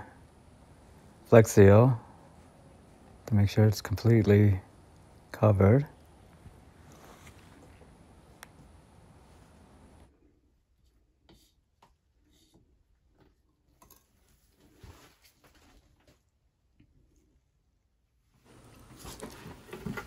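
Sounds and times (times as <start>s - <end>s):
faint steady hiss: 0.0s - 20.0s.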